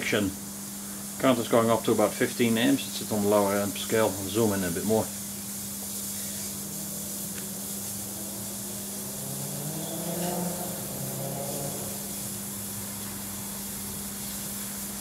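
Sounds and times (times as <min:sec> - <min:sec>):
batteries hissing: 0:00.0 - 0:15.0
low mains hum: 0:00.0 - 0:15.0
faint wavering whistle: 0:09.8 - 0:10.8.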